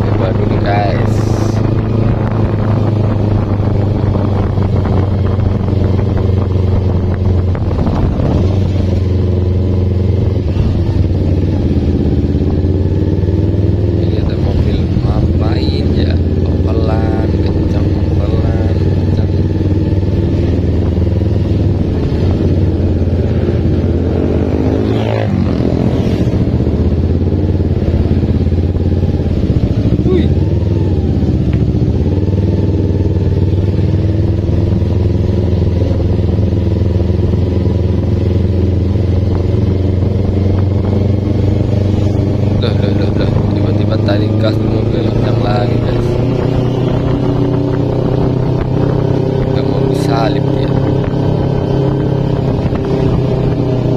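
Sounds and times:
motorcycle engine running: 0:00.0 - 0:53.9.

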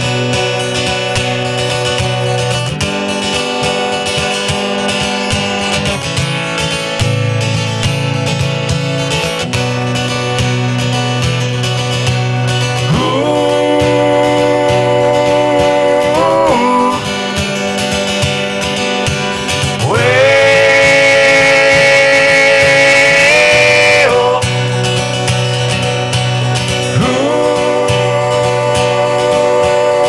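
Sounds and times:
acoustic guitar picked: 0:00.0 - 0:30.0
man singing: 0:12.6 - 0:24.7, 0:26.7 - 0:30.0.

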